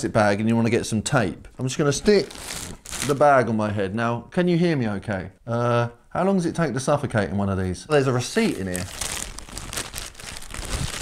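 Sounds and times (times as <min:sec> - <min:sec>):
plastic bag crinkling: 0:02.1 - 0:03.2, 0:08.3 - 0:11.0.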